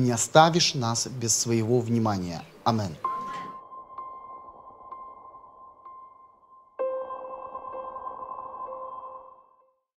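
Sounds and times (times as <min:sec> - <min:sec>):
electronic chime tone: 0:03.0 - 0:09.9.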